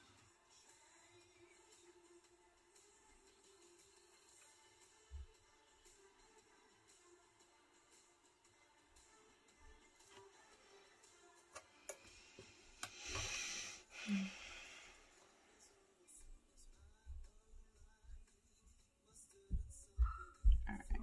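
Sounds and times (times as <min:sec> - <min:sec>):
faint background music: 0:00.0 - 0:21.0.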